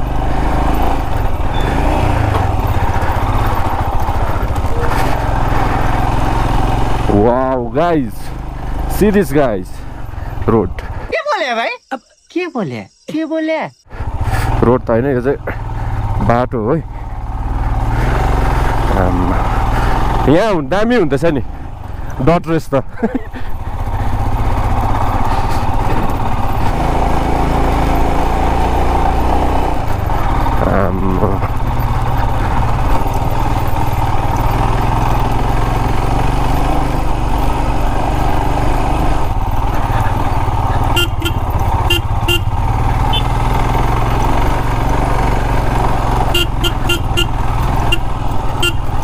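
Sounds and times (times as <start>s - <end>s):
motorcycle engine running: 0.0s - 11.1s, 13.9s - 49.0s
short horn toots: 40.8s - 43.4s, 46.3s - 49.0s.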